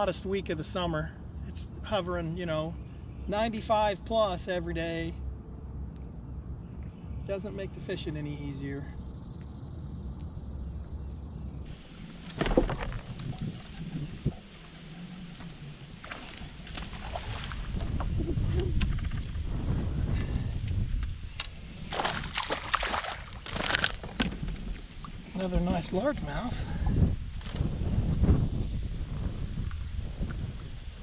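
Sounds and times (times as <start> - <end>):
wind rumble on microphone: 0.0 - 31.0
fish splashing and thrashing in water: 11.8 - 18.1, 21.9 - 24.3.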